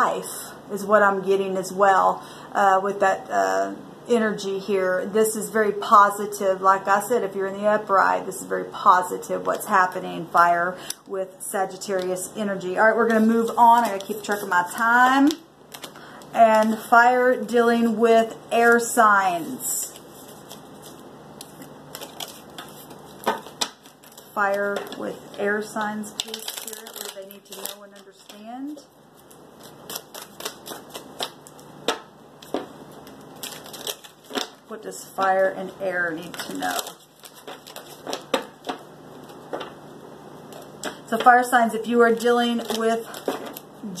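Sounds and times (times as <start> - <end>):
cards being shuffled: 13.0 - 16.8, 19.3 - 28.4, 29.2 - 34.6, 36.2 - 39.8.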